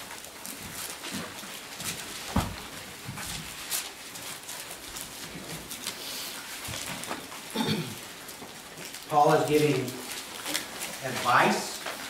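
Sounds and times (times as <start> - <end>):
book pages flipping: 0.0 - 7.5, 8.3 - 12.0.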